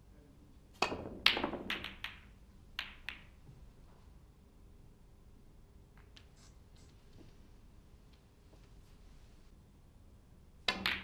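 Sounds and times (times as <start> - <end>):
snooker balls clacking: 0.8 - 3.4, 10.7 - 11.0.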